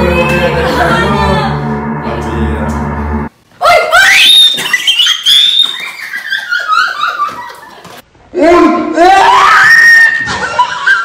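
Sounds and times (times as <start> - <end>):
woman screaming in fright: 3.7 - 5.4, 9.0 - 10.3.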